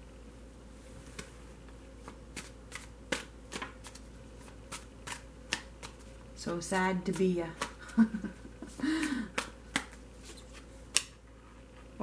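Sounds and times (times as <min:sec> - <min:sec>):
cards being shuffled: 0:02.0 - 0:11.2
cards snapping: 0:02.3 - 0:06.1, 0:09.0 - 0:11.2.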